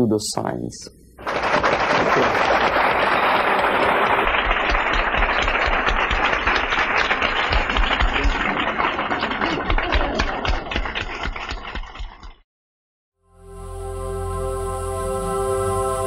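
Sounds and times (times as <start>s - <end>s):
large audience applauding: 1.2s - 12.2s.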